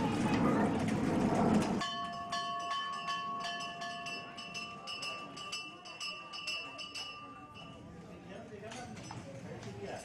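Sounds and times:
noisy rumble: 0:00.0 - 0:01.8
metal bells ringing: 0:01.8 - 0:08.0.

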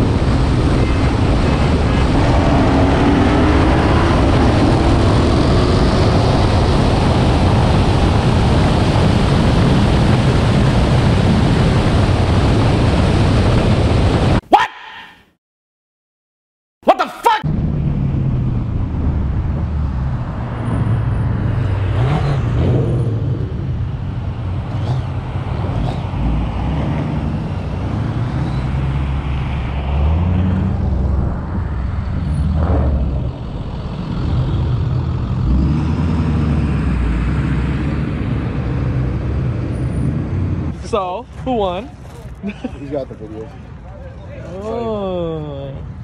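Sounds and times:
car engine and exhaust: 0:00.0 - 0:14.4, 0:17.4 - 0:46.0
wind and road noise: 0:00.0 - 0:14.5, 0:16.8 - 0:46.0.

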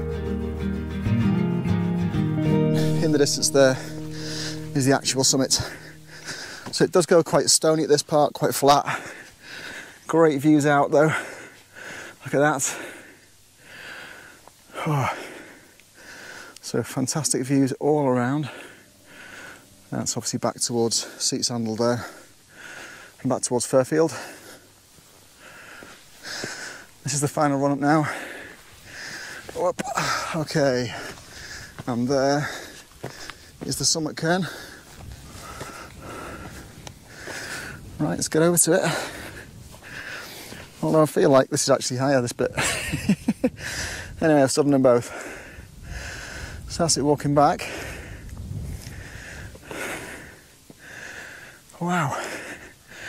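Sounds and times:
person breathing hard: 0:03.8 - 0:04.7, 0:05.6 - 0:06.7, 0:08.9 - 0:10.0, 0:11.1 - 0:16.6, 0:18.4 - 0:19.9, 0:22.0 - 0:23.2, 0:24.1 - 0:26.9, 0:28.0 - 0:31.8, 0:32.4 - 0:33.6, 0:34.4 - 0:37.9, 0:38.8 - 0:40.7, 0:43.5 - 0:44.2, 0:45.1 - 0:46.7, 0:47.6 - 0:53.0.

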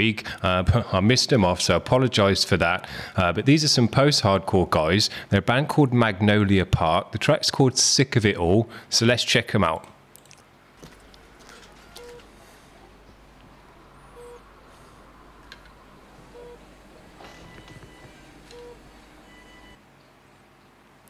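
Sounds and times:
low hum: 0:10.8 - 0:20.3
electronic heart monitor beep: 0:11.9 - 0:12.2, 0:14.0 - 0:14.5, 0:16.3 - 0:19.8.

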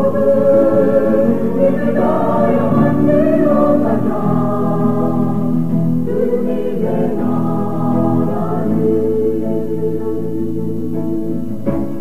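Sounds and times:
choir singing held notes: 0:00.0 - 0:12.0.

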